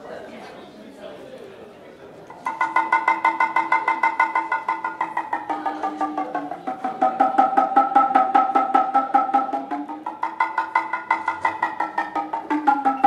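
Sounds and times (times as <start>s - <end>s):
shoulder drum struck by hand: 2.5s - 13.0s.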